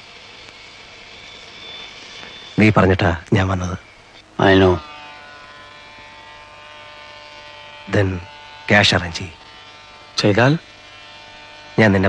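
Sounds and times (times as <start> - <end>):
steady electrical hum: 0.0 - 12.0
man's voice: 4.4 - 4.8.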